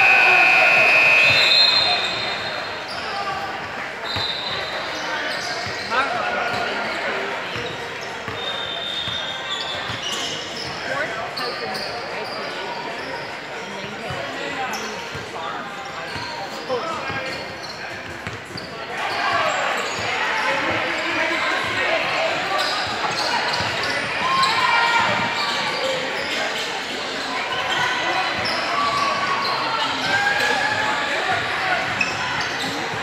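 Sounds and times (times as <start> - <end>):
voices echoing in gym: 0.0 - 33.0.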